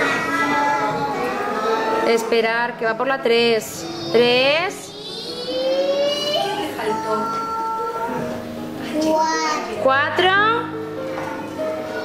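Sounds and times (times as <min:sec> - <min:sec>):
children counting aloud: 0:00.0 - 0:02.1, 0:04.9 - 0:08.2.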